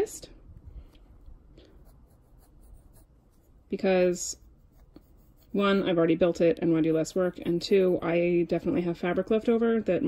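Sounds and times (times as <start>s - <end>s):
pencil scratching on paper: 1.7s - 8.9s.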